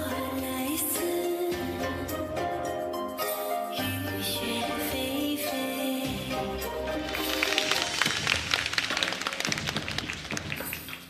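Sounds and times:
dance music: 0.0s - 11.0s
audience applauding: 6.8s - 11.0s.

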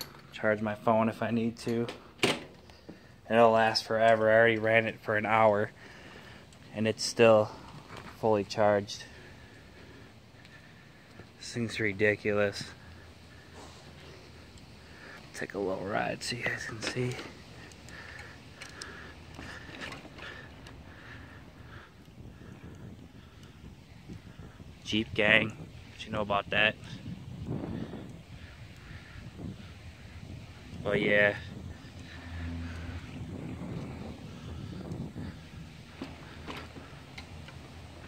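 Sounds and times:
bicycle rolling on pavement: 2.5s - 38.0s
wind on microphone: 19.2s - 37.7s.

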